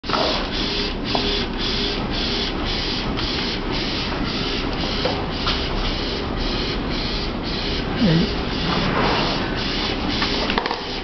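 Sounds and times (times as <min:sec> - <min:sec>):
printer running pulsing hiss: 0:00.1 - 0:11.0.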